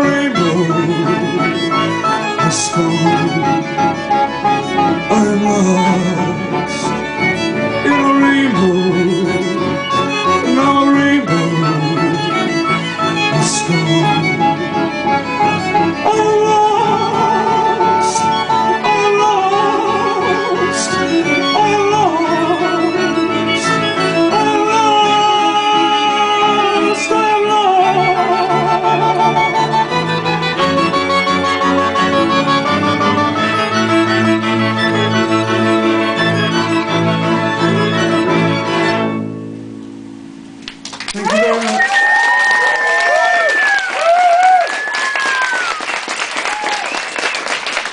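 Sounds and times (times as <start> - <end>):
bowed strings: 0.0 - 41.5
keyboard: 0.0 - 42.4.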